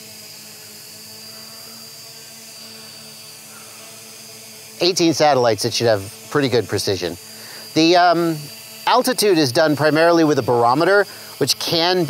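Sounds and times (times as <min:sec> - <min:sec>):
drone propellers humming: 0:00.0 - 0:12.0
thin high whine: 0:00.0 - 0:12.0.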